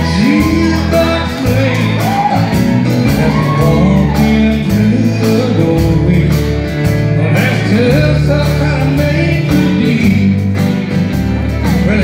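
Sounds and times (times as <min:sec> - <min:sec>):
man singing: 0:00.0 - 0:10.9, 0:11.6 - 0:12.0
bass guitar: 0:00.0 - 0:12.0
live country band playing: 0:00.0 - 0:12.0
strummed acoustic guitar: 0:00.0 - 0:12.0.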